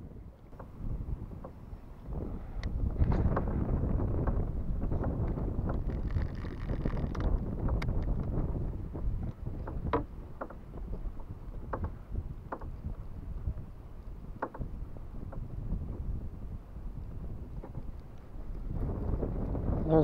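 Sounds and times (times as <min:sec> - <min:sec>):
water slapping kayak hull: 0:00.0 - 0:20.0
wind buffeting microphone: 0:00.0 - 0:20.0.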